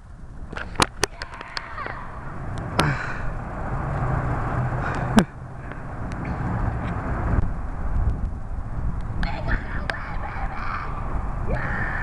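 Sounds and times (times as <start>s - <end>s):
rumbling background noise: 0.0s - 12.0s
boys shouting: 1.1s - 2.3s, 9.2s - 12.0s.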